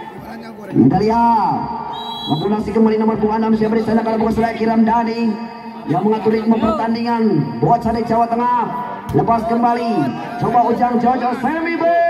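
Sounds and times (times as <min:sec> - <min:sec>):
high whistle-like tone: 0:01.9 - 0:02.6.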